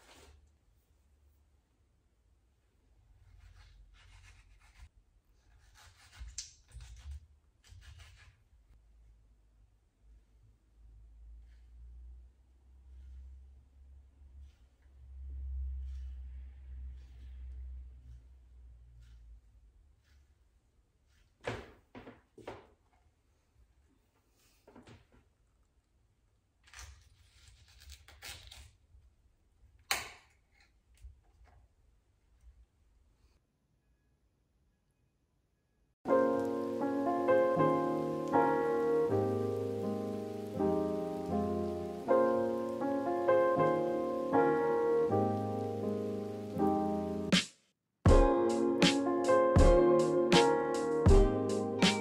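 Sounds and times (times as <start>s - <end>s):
knife scraping through mango: 3.2s - 8.5s, 12.7s - 21.4s.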